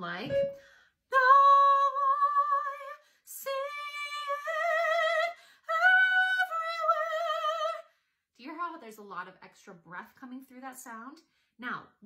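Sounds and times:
woman singing soprano: 0.3s - 7.8s.

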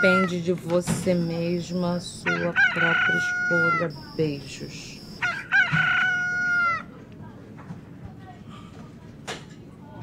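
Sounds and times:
rooster crowing: 2.2s - 4.0s, 5.2s - 6.9s.

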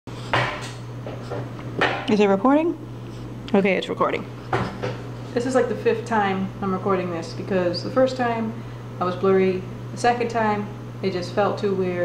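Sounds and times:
low electrical hum: 0.1s - 12.0s.

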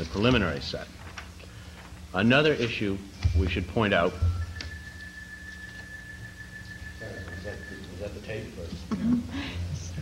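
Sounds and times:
low electrical hum: 0.0s - 10.0s
high-pitched whine: 2.2s - 10.0s.

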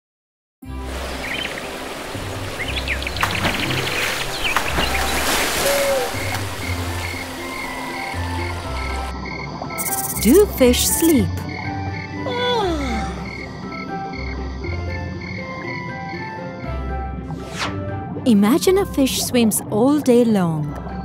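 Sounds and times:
soft background music: 0.6s - 21.0s
frogs croaking: 1.1s - 16.9s
high chirping calls: 9.7s - 11.3s.

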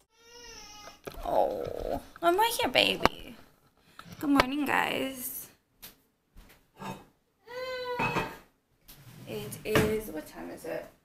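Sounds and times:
baby crying: 0.0s - 1.1s, 7.4s - 8.4s.

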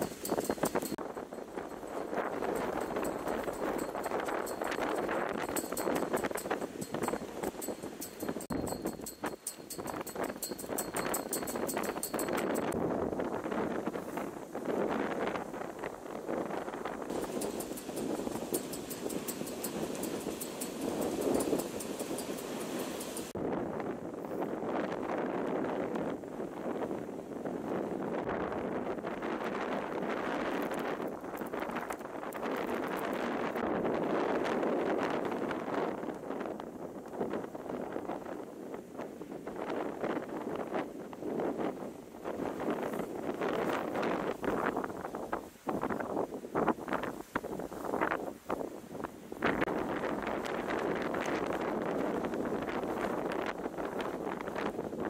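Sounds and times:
wind buffeting microphone: 0.0s - 55.0s
surf breaking on beach: 17.1s - 23.4s.

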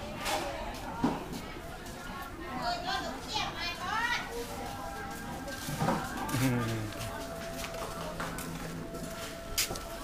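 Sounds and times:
market chatter: 0.0s - 10.0s.

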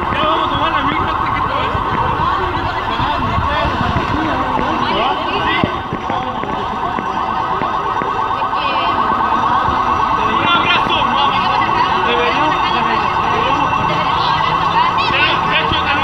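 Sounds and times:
car alarms chirping: 0.0s - 16.0s
sirens wailing: 0.0s - 16.0s
street traffic: 0.0s - 16.0s.

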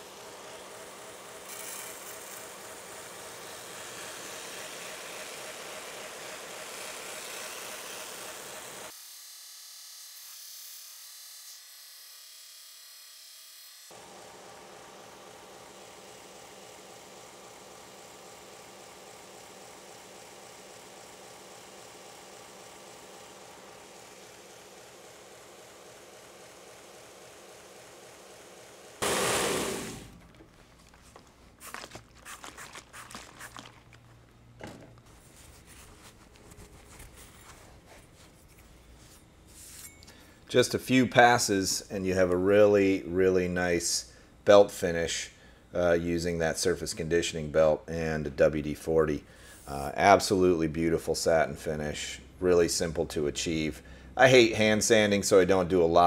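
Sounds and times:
belt grinder motor hum: 0.0s - 30.6s
abrasive hissing on steel blade: 29.0s - 30.2s
loud burst of noise: 29.0s - 30.2s.

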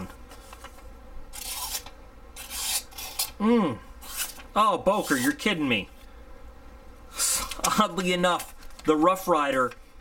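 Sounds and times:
knife blade slicing a sheet: 1.4s - 3.4s.

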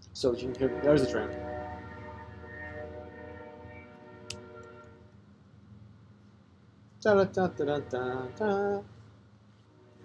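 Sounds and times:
train horn chord: 0.2s - 5.1s, 7.3s - 8.8s, 9.7s - 10.0s.

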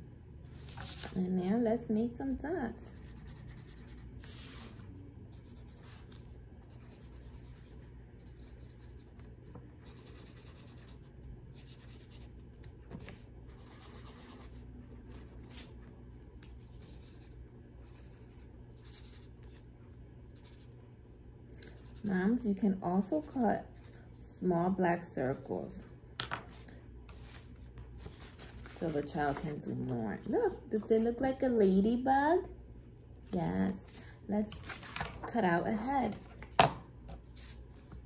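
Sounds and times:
marker scratching on paper: 2.9s - 12.5s.

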